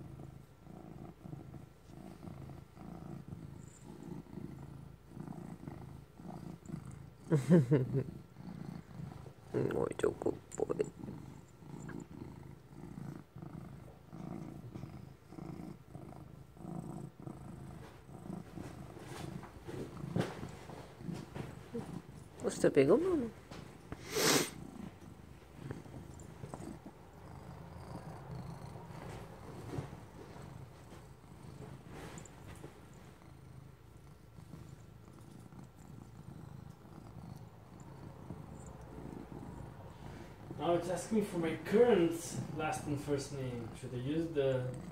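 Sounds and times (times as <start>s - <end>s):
cat purring: 0.0s - 44.9s.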